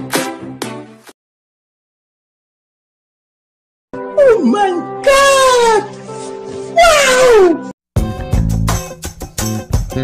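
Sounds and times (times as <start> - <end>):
background music: 0.0 - 1.1, 4.0 - 10.0.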